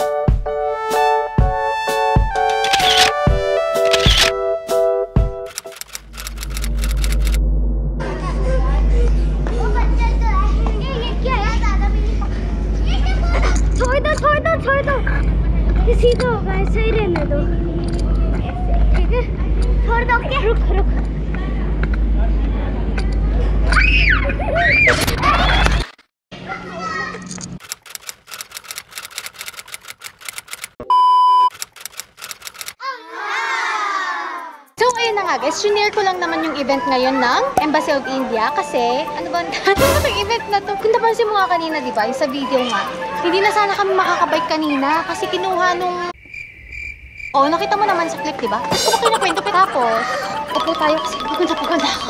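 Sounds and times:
rapid typewriter-like clicking: 0:02.4 - 0:03.2, 0:03.8 - 0:04.3, 0:05.4 - 0:07.4, 0:27.6 - 0:30.8, 0:31.5 - 0:32.8
children chattering and calling: 0:08.0 - 0:23.8, 0:32.8 - 0:39.7, 0:40.7 - 0:46.1, 0:47.6 - 0:52.0
test-tone beep: 0:30.8 - 0:31.5.

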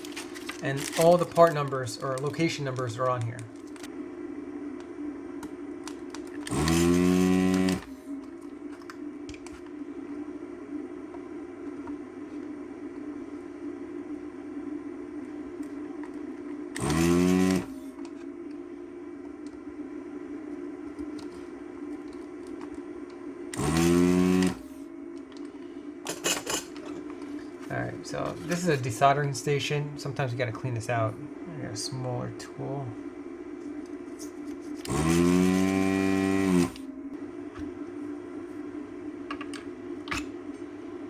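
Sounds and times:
steady hum: 0:00.0 - 0:41.0
vacuum pump whine: 0:00.0 - 0:41.0.

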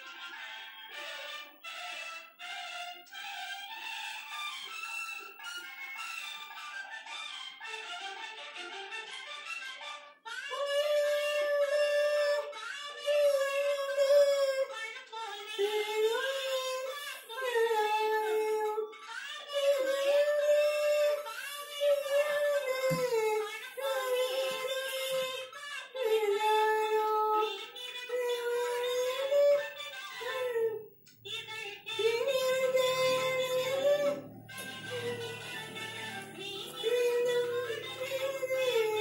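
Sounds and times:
woman singing solo: 0:19.5 - 0:39.0.

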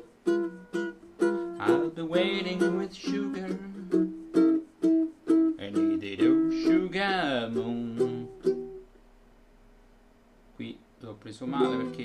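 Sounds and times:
ukulele strumming: 0:00.0 - 0:08.9, 0:11.4 - 0:12.0.

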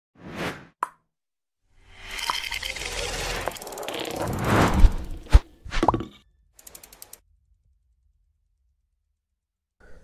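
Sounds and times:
mix of animation sound effects: 0:02.8 - 0:05.8.

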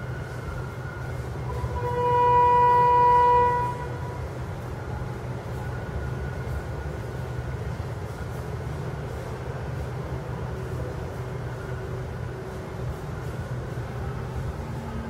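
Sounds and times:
steady low drone: 0:00.0 - 0:15.0
loud horn-like tone: 0:01.5 - 0:04.1.

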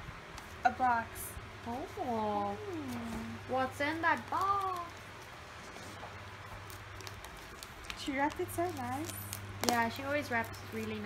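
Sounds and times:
gift wrapping crinkling: 0:01.6 - 0:11.0.

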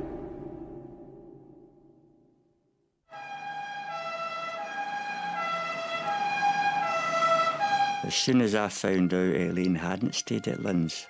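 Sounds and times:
two-tone emergency siren: 0:03.2 - 0:08.1.

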